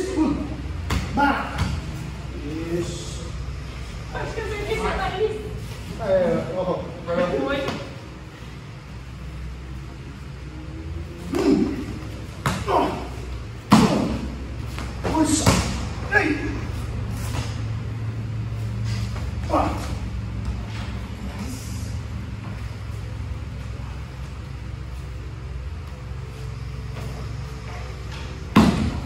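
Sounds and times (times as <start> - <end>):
thuds of kicks and strikes: 28.5 - 29.0.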